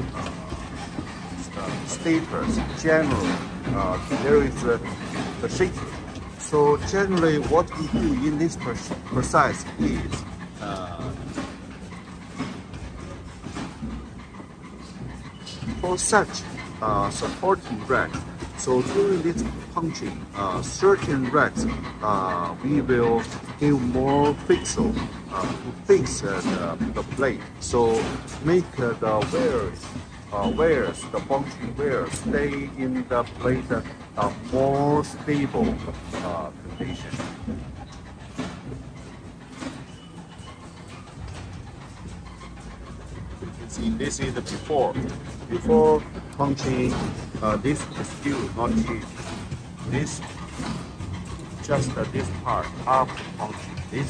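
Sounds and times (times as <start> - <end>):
faint knocks and rustles: 0.0 - 54.0
low machinery rumble: 0.0 - 54.0
workshop background noise: 0.0 - 54.0.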